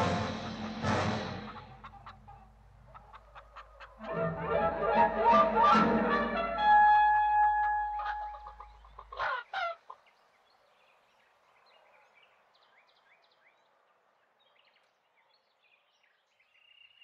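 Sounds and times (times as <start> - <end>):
orchestral music: 0.0 - 1.9, 4.0 - 8.4
cartoon rooster clucks: 0.3 - 4.1.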